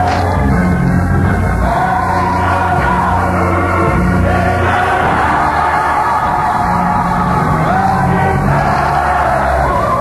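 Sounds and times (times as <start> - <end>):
instrumental accompaniment: 0.0 - 10.0
gospel choir singing: 1.3 - 10.0.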